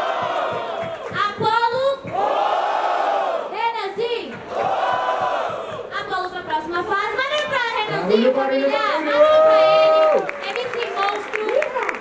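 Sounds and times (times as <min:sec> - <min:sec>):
crowd yelling together: 0:02.1 - 0:03.6, 0:04.5 - 0:05.9.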